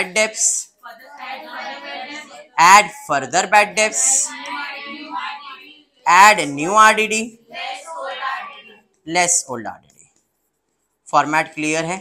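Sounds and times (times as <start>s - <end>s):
lecturer speaking: 0.0s - 9.9s, 11.1s - 12.0s
sing-song higher-pitched voice: 3.7s - 6.5s.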